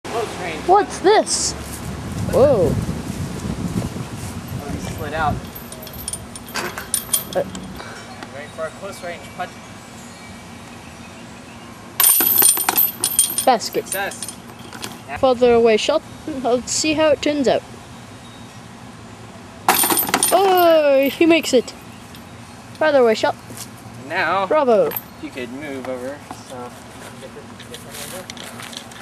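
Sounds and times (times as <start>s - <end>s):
metal chains jingling: 4.8s - 7.8s, 12.0s - 15.2s, 19.7s - 22.3s, 24.8s - 25.2s.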